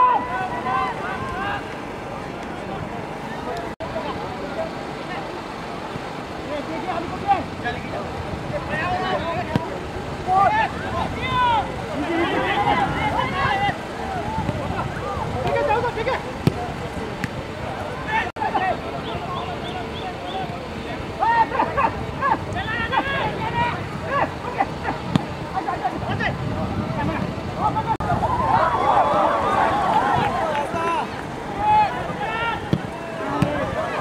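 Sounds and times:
loud shouted calls: 0.0 - 1.7, 18.0 - 25.0, 27.7 - 34.0
distant crowd: 0.0 - 34.0
voices calling out: 0.0 - 34.0
wind hiss on microphone: 25.0 - 30.8
football kicked on grass: 32.7 - 33.7.

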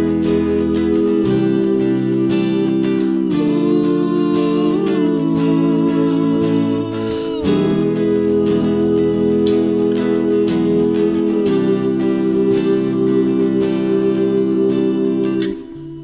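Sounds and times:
soft layered vocal harmonies: 0.0 - 16.0
unplugged electric guitar chords: 0.0 - 16.0.

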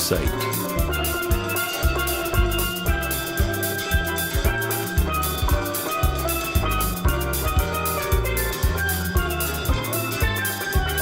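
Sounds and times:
bass: 0.0 - 11.0
drums keeping a steady beat: 0.0 - 11.0
bright ringing melody: 0.6 - 11.0.

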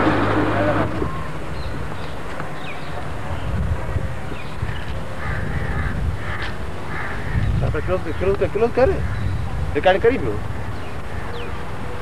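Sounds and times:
bird calling: 0.5 - 3.0, 10.5 - 12.0.

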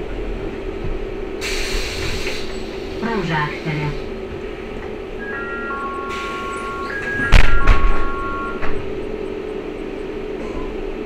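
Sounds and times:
compressed air hiss: 1.4 - 3.0.

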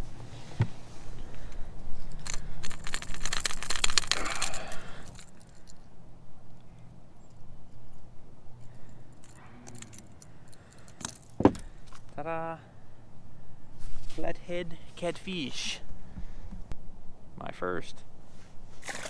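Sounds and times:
metal hooks clinking and rattling: 2.0 - 5.9, 7.2 - 12.0.

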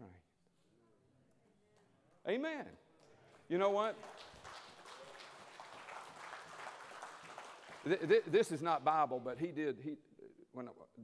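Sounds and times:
congregation applauding: 3.3 - 8.9.

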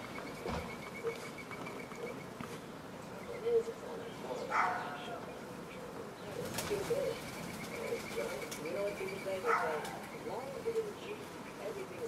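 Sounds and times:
doves cooing: 0.0 - 12.0.

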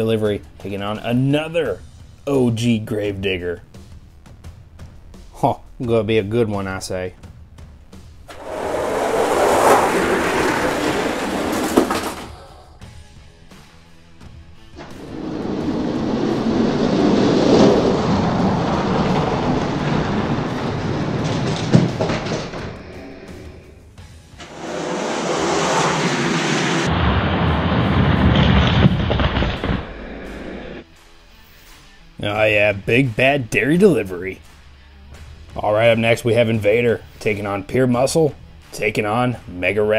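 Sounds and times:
plastic wheels rolling on track: 8.3 - 12.7, 14.8 - 23.6, 24.4 - 30.1.

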